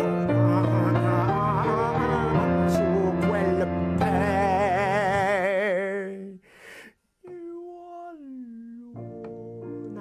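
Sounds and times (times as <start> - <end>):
piano: 0.0 - 6.3, 7.6 - 10.0
person humming: 0.0 - 6.4, 7.2 - 10.0
operatic singing with vibrato: 0.0 - 6.5.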